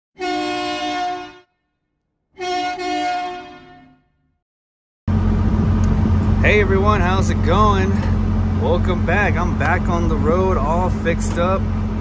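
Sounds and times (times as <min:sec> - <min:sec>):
truck air horn blasts: 0:00.2 - 0:01.8, 0:02.4 - 0:04.3
diesel engine idling: 0:05.1 - 0:12.0.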